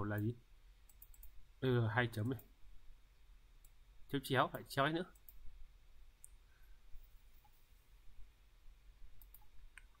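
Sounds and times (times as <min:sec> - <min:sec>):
faint low hum: 0:00.0 - 0:10.0
computer mouse clicks: 0:00.9 - 0:01.4, 0:05.1 - 0:05.4, 0:09.2 - 0:10.0.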